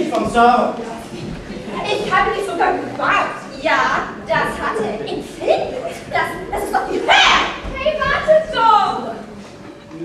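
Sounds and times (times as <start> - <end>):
girl speaking animatedly: 1.8 - 9.1.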